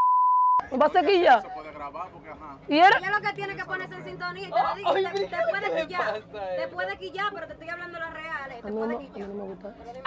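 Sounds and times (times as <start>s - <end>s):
censor bleep: 0.0s - 0.6s.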